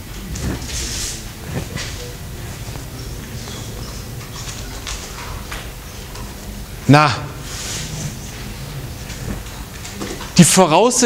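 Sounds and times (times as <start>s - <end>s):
rustles and shuffles: 0.0s - 10.4s
low room rumble: 0.0s - 11.0s.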